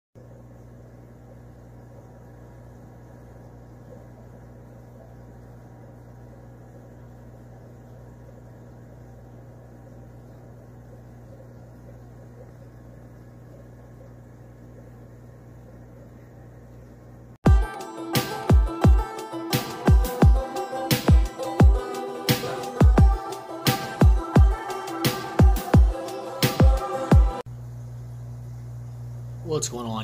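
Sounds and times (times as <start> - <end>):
aquarium equipment hum: 0.2 - 30.0.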